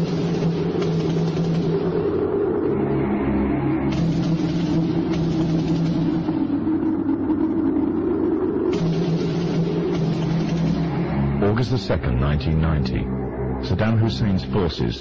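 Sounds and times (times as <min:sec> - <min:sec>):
low drone of held tones: 0:00.0 - 0:15.0.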